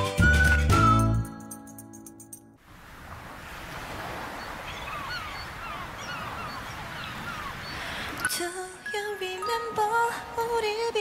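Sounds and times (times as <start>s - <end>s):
ocean surf washing: 2.6s - 11.0s
seagull calls: 4.3s - 8.2s.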